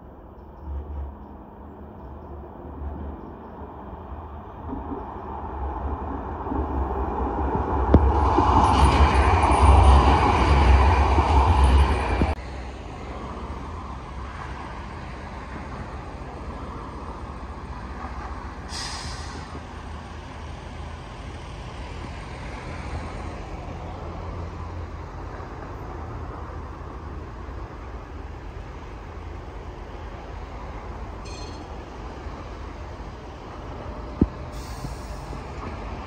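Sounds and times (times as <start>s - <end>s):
road traffic: 0.0s - 36.0s
tram wheels rolling on rails: 0.0s - 36.0s
short hiss: 18.7s - 19.5s, 34.5s - 35.4s.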